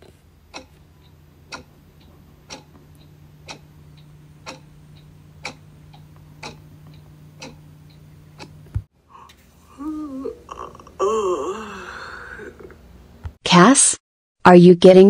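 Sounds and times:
clock ticking: 0.0s - 8.7s
low steady hum: 0.0s - 13.3s.

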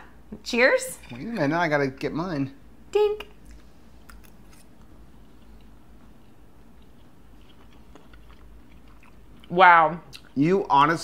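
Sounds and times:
chewing soft food: 3.4s - 10.4s.

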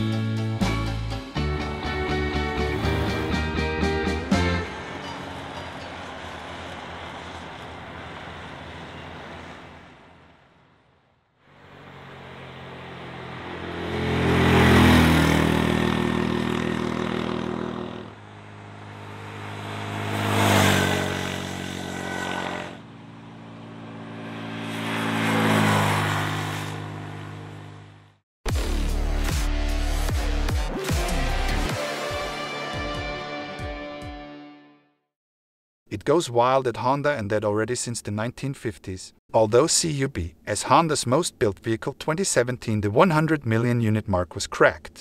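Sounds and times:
motorcycles passing by: 2.1s - 10.8s, 11.5s - 28.1s.

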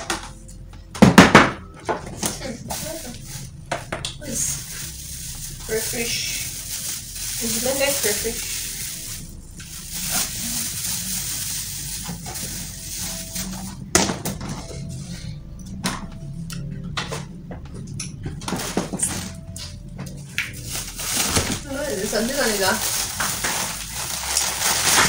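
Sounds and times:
faint background music: 0.0s - 25.0s
plastic bags rustling and crinkling: 2.0s - 15.0s, 18.4s - 19.8s, 20.5s - 25.0s.

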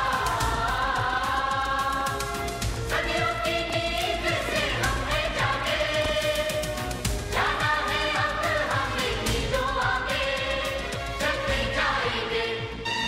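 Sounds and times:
steady percussion beat: 0.0s - 11.8s.

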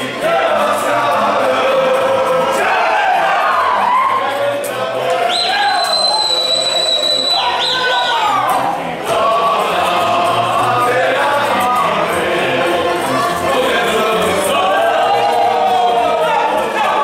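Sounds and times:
group singing folk song: 0.0s - 17.0s.

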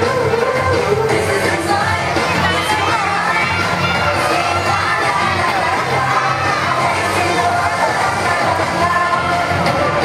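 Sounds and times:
children shouting and cheering: 0.0s - 10.0s
pop dance music: 0.0s - 10.0s.

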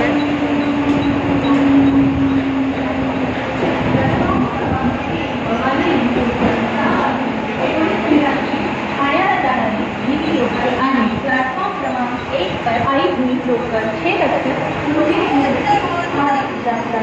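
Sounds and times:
electric train rumble and motor hum: 0.0s - 17.0s
people's voices: 0.0s - 17.0s.

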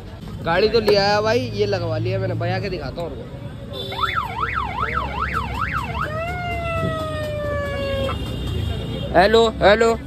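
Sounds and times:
electronic siren yelping: 4.0s - 8.2s.

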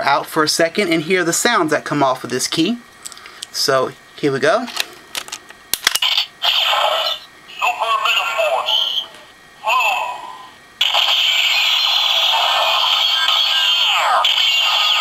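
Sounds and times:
toy electronic sound effects: 6.0s - 15.0s
gliding voice-like bursts: 6.4s - 15.0s.

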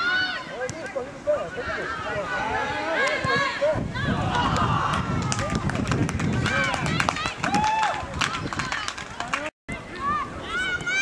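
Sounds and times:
people calling and shouting: 0.0s - 11.0s.

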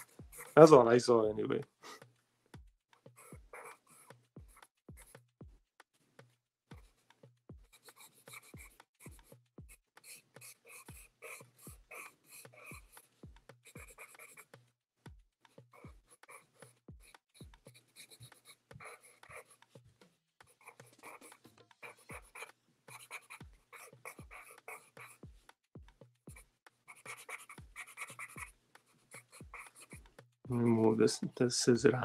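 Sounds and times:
pencil scratching on paper: 0.0s - 0.7s, 3.0s - 5.2s, 6.8s - 14.6s, 15.5s - 19.8s, 20.4s - 25.6s, 26.3s - 31.2s
man speaking: 0.6s - 1.6s, 30.5s - 32.0s.

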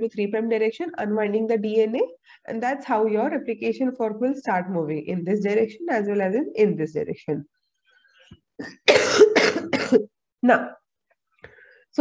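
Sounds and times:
woman coughing: 8.6s - 10.2s.

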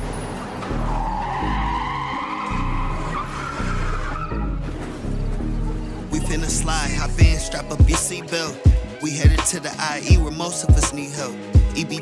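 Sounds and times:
car tire screech effect: 0.0s - 5.3s
hip hop beat with deep bass: 0.7s - 12.0s.

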